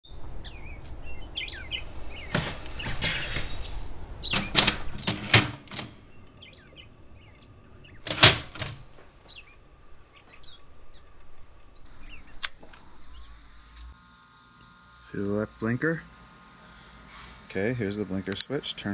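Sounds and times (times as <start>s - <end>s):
small birds chirping: 0.0s - 5.3s, 6.0s - 14.0s
typewriter rattle: 4.3s - 6.0s, 8.0s - 8.8s
typewriter keys clacking: 4.4s - 6.0s, 8.1s - 8.8s.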